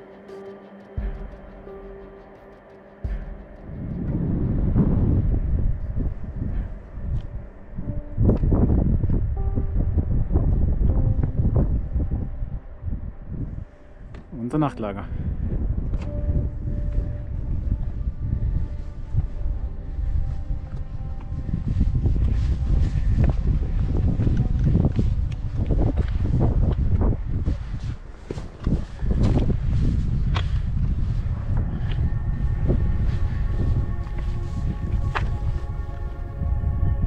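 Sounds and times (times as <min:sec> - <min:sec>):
wind buffeting microphone: 0:03.0 - 0:37.0.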